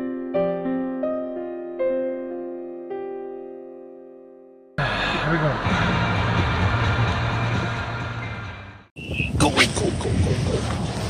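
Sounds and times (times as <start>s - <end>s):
piano music: 0.0s - 4.8s.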